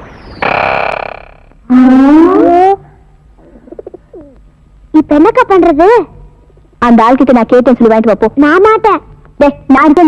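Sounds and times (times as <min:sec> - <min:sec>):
rising wavering electronic tone: 0:00.4 - 0:01.5.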